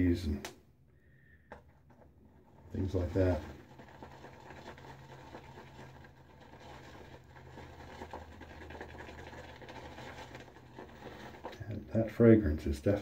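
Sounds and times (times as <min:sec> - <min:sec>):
shaving brush swishing lather: 0:02.7 - 0:11.8.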